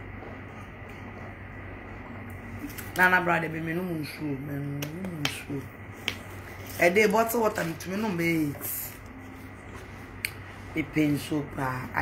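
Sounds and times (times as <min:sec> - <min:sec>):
woman speaking: 0:02.6 - 0:09.1, 0:10.6 - 0:12.0.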